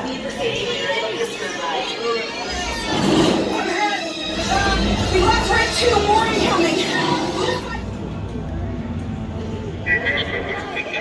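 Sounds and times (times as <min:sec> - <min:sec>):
alien chatter over sound system: 0:00.1 - 0:08.0, 0:09.8 - 0:11.0.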